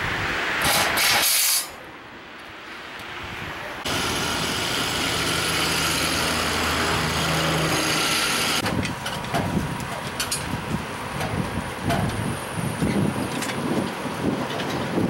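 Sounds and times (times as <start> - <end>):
roadside traffic noise: 0.0 - 15.0
heavy vehicle engine running: 3.2 - 15.0.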